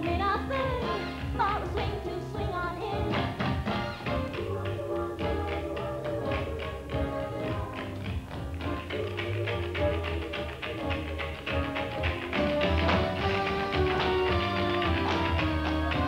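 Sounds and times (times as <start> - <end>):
swing big band music: 0.0 - 16.0
tap-dance steps: 0.0 - 16.0.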